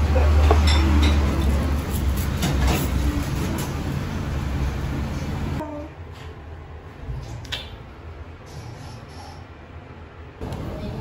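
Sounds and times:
eatery background rumble: 0.0 - 8.2.

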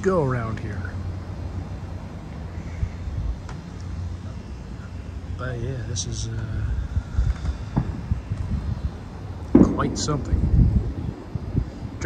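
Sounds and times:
wind buffeting microphone: 0.0 - 3.5, 5.2 - 12.0.

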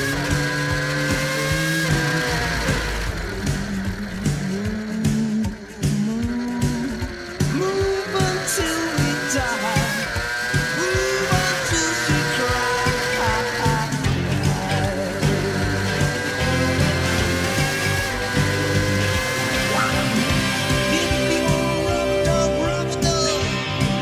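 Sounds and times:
racing engine revving: 0.0 - 24.0
rock music: 0.0 - 24.0.

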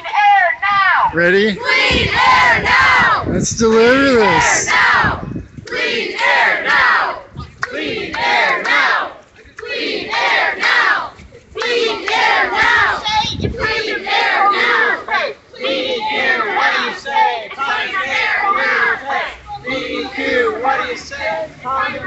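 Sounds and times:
crowd chanting in unison: 1.6 - 3.3, 4.1 - 22.0.

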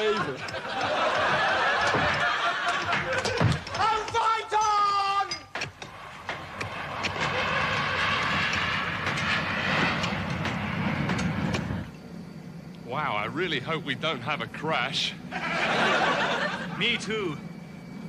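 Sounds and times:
jet airliner flying over: 5.9 - 18.0.

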